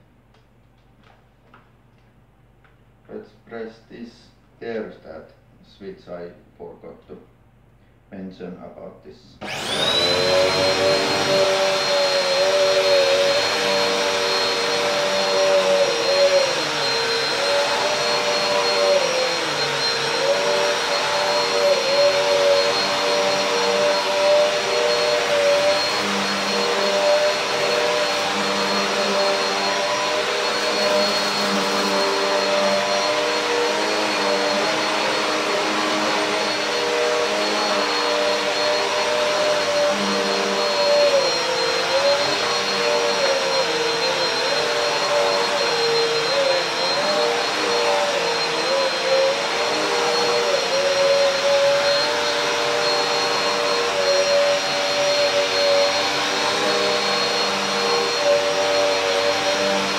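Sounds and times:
vacuum cleaner running: 9.4s - 59.9s.

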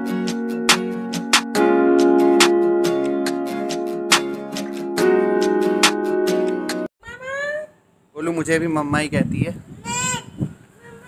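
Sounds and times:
music with held chords: 0.0s - 6.9s
toddler calling out: 9.8s - 11.0s.

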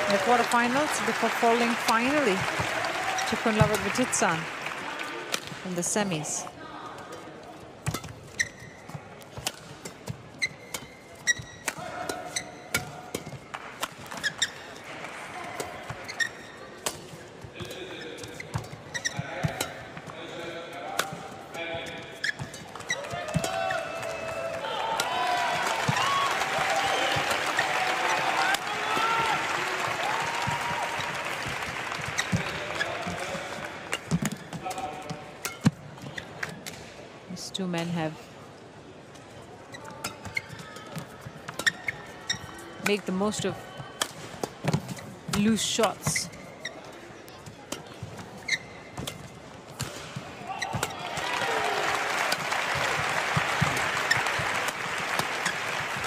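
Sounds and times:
crowd cheering and shouting: 0.0s - 3.9s, 23.0s - 31.6s, 50.4s - 54.5s
shoes on court: 0.0s - 6.4s, 8.0s - 36.5s.

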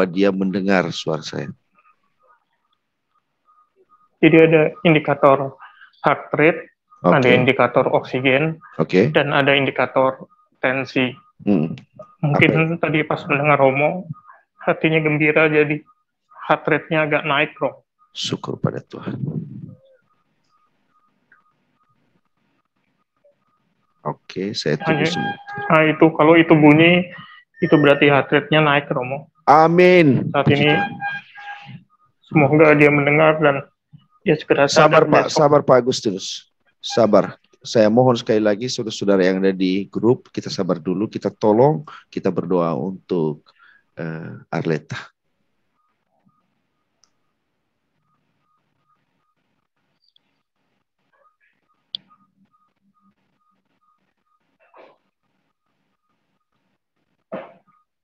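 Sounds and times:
patient monitor beeping: 0.0s - 36.1s, 36.8s - 43.8s, 45.7s - 50.2s, 51.2s - 58.0s.

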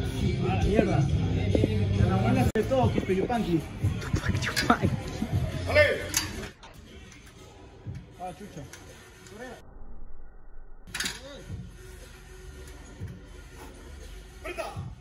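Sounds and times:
quiet background music: 0.0s - 9.6s, 10.9s - 15.0s.

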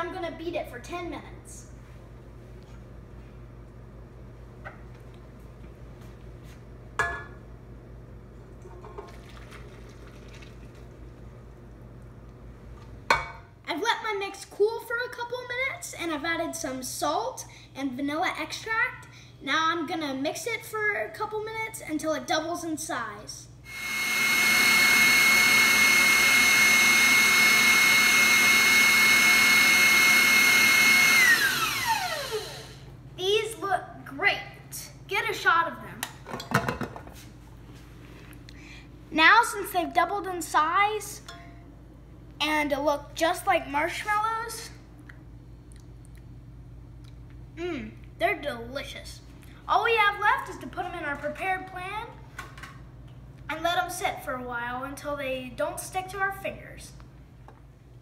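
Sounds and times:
stand mixer motor whine: 23.7s - 32.8s.

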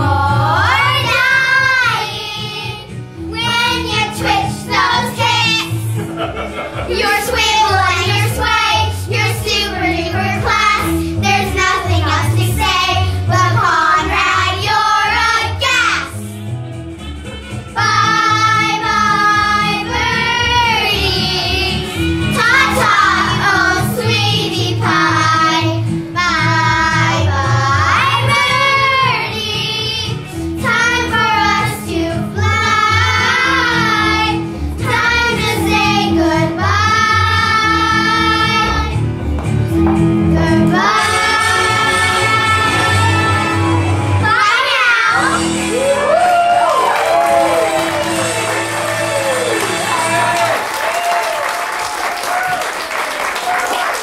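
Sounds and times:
girls singing together: 0.0s - 2.9s, 6.8s - 15.6s, 17.8s - 25.8s, 26.4s - 39.0s, 40.3s - 45.1s
instrumental accompaniment with bass: 0.0s - 50.8s.

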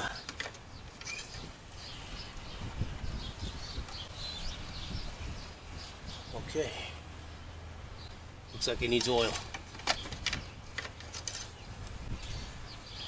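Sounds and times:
birds chirping: 0.0s - 13.0s.

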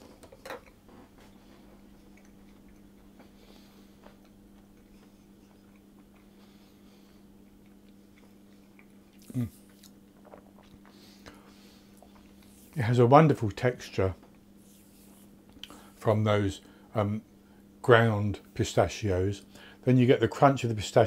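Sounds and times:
steady low hum: 0.0s - 21.0s
person chewing cake: 0.2s - 12.8s.

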